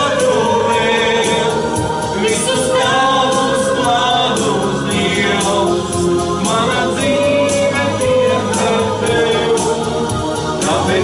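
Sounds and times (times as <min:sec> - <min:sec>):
people singing worship song: 0:00.0 - 0:11.0
steady accompaniment beat: 0:00.0 - 0:11.0.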